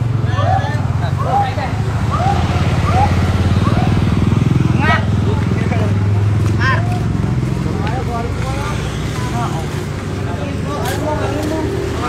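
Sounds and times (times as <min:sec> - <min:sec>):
motorcycle engine running: 0:00.0 - 0:12.0
voices calling out: 0:00.0 - 0:12.0.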